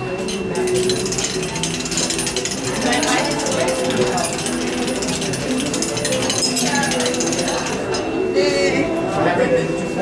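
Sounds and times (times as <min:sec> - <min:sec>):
hand-cranked machine clicking: 0:00.2 - 0:08.0.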